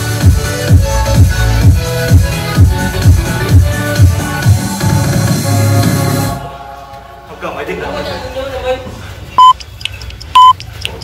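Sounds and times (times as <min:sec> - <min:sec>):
short high timer beeps: 0:10.4 - 0:10.6.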